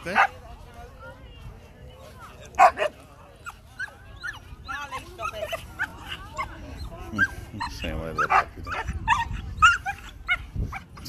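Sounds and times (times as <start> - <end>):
dog barking: 2.5 - 3.0, 8.2 - 10.4
dog yipping and whining: 3.4 - 11.0.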